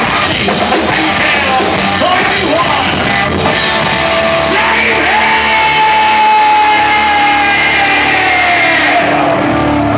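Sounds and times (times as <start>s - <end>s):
live rock band playing: 0.0s - 9.9s.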